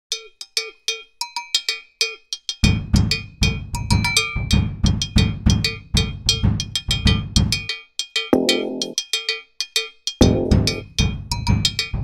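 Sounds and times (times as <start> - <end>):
bright pitched percussion hits: 8.4 - 9.0.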